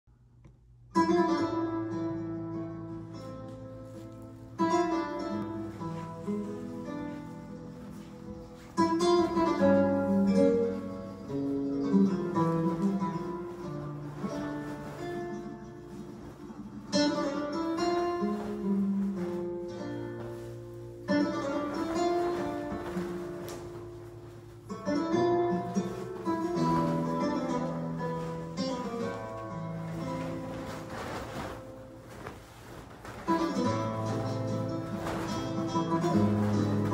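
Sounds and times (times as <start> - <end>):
flamenco acoustic guitar: 0.9 - 36.9.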